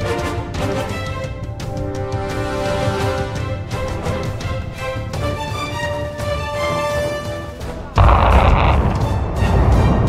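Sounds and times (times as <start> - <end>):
music: 0.0 - 10.0
heavy low rumble: 8.0 - 10.0
loud explosion boom: 8.0 - 10.0.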